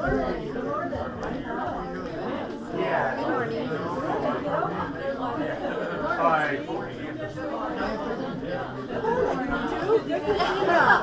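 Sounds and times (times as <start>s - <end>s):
overlapping chatter of crowd: 0.0s - 11.0s.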